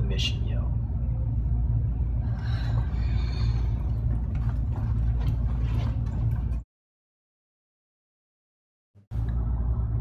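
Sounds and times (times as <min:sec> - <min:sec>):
low rumble: 0:00.0 - 0:06.6, 0:09.1 - 0:10.0.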